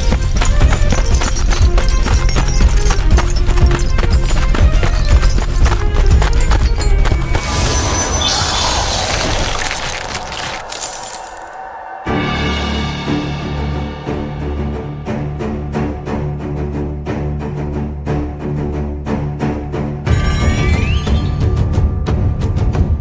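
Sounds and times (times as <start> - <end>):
driving percussion: 0.0 - 8.1
epic orchestral music: 0.0 - 23.0.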